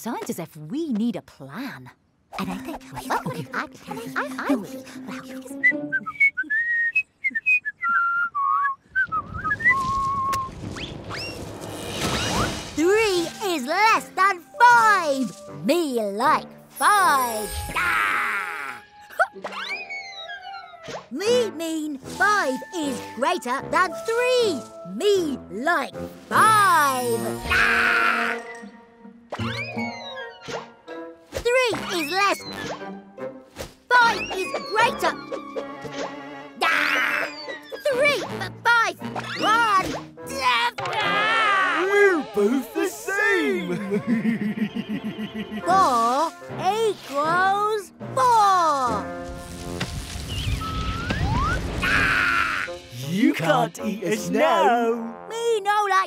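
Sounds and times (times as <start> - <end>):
light cartoon music: 2.3 - 6.9, 11.1 - 56.0
cartoon character whistling: 50.4 - 52.4.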